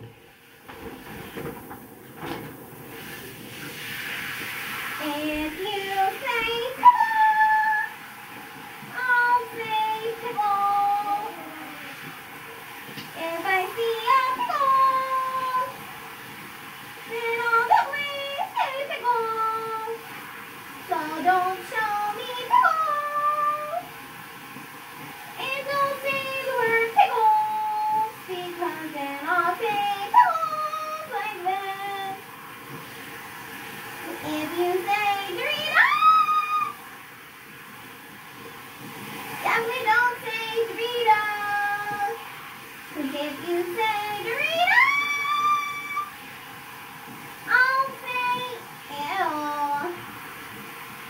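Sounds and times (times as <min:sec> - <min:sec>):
child singing wordless tune: 0:05.0 - 0:08.0, 0:08.9 - 0:12.1, 0:13.1 - 0:15.8, 0:17.1 - 0:20.1, 0:20.9 - 0:23.9, 0:25.4 - 0:32.3, 0:34.0 - 0:36.8, 0:39.4 - 0:42.3, 0:42.9 - 0:46.2, 0:47.4 - 0:50.1
high wordless vocal notes: 0:08.9 - 0:12.1.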